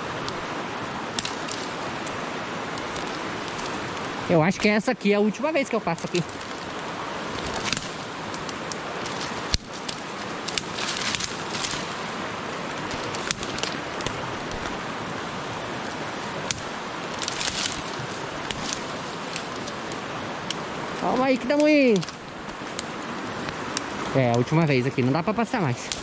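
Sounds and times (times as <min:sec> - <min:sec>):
branches and leaves rustling: 0:00.0 - 0:26.0
twigs snapping: 0:00.2 - 0:04.9, 0:05.8 - 0:14.9, 0:15.8 - 0:24.5, 0:25.5 - 0:26.0.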